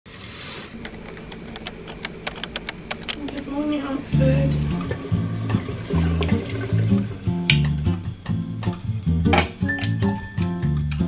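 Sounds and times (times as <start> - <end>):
low room hum: 0.5 - 9.2.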